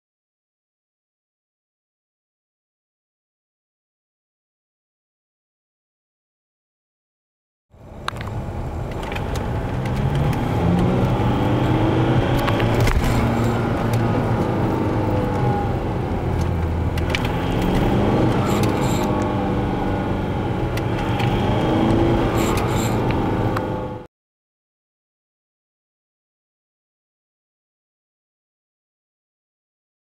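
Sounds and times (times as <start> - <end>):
road noise: 7.7 - 24.1
diesel engine under load: 7.8 - 24.1.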